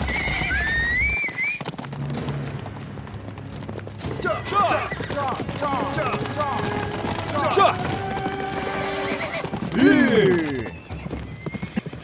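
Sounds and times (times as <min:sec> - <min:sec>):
horse whinnying: 0:00.0 - 0:01.6, 0:04.4 - 0:12.0
hooves galloping on dirt: 0:00.0 - 0:12.0.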